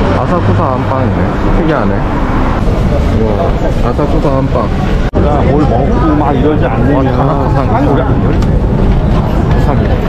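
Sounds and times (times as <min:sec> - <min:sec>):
crowd chatter: 0:00.0 - 0:10.0
low city rumble: 0:00.0 - 0:10.0.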